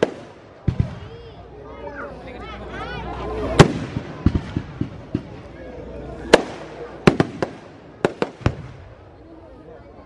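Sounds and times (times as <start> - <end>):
fireworks bangs: 0.0 - 1.4, 3.2 - 9.1.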